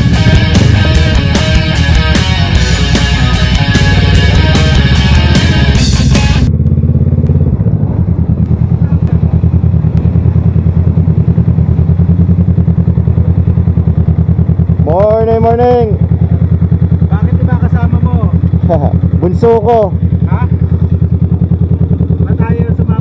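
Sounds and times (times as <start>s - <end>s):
motorcycle engine idling: 0.0s - 23.0s.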